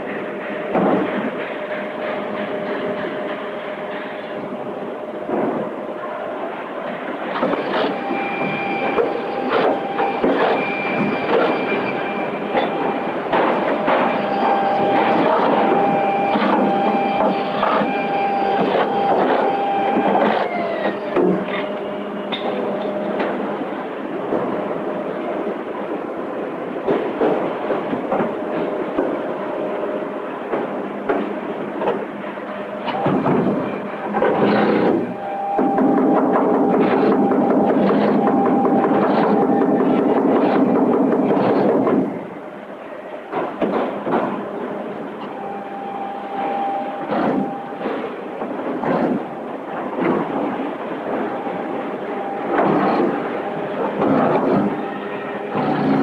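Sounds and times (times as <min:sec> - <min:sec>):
factory machinery running: 0:00.0 - 0:56.0
steady whine: 0:00.0 - 0:56.0.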